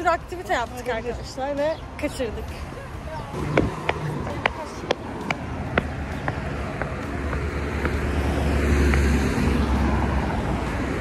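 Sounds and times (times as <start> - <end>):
footsteps on pavement: 0.0 - 9.8.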